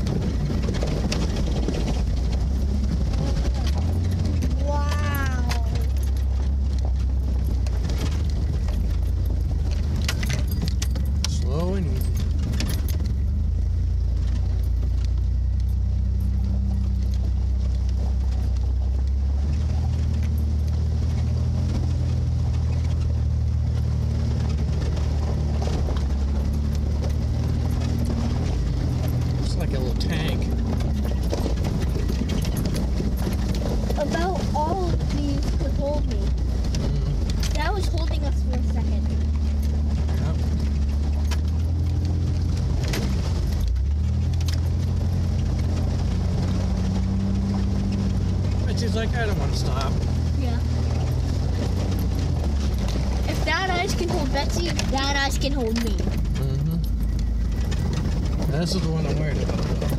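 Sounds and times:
truck engine running low: 0.0s - 59.9s.

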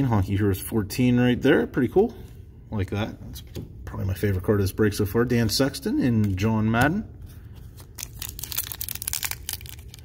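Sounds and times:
foil wrapper tearing and crinkling: 7.8s - 10.0s.

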